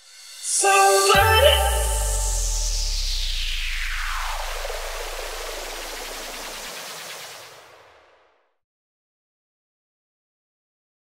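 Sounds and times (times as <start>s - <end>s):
low bass tone: 0.0s - 6.7s
white-noise sweep falling: 0.0s - 8.6s.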